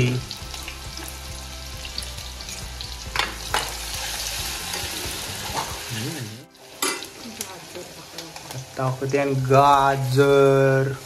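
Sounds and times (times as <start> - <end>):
chillies sizzling in hot oil: 0.0 - 11.0.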